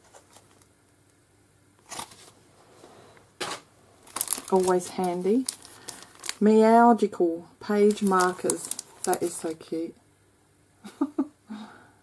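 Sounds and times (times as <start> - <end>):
plastic packets rustling: 4.0 - 6.4, 7.7 - 9.8.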